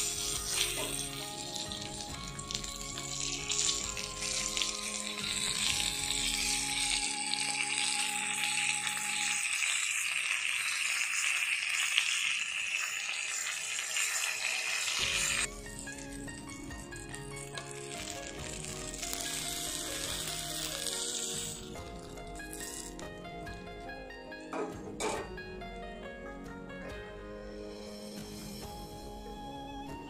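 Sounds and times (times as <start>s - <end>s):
background music: 0.0s - 11.8s, 14.9s - 30.0s
fish sizzling in hot oil: 0.0s - 23.1s, 27.7s - 29.0s.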